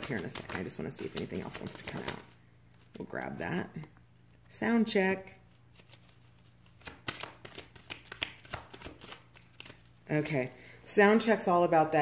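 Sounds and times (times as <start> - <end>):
cards being shuffled: 0.0 - 3.1, 5.5 - 10.0.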